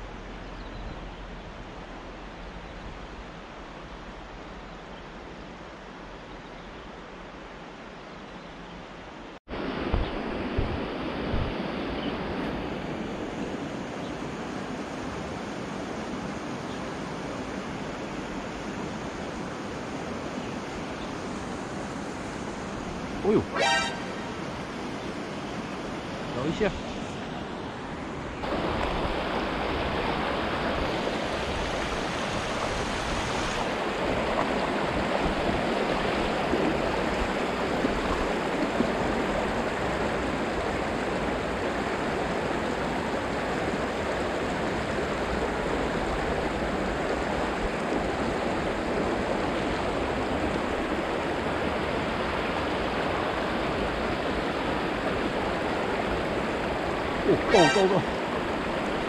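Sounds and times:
water rushing over stones: 0:09.5 - 0:16.5, 0:28.4 - 0:59.0.

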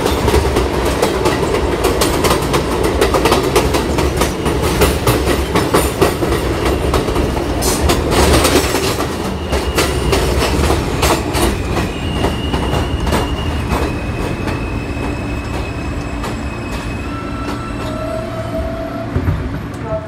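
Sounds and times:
train wheels clicking over rail joints: 0:00.0 - 0:18.1
train rumble: 0:00.0 - 0:20.0.

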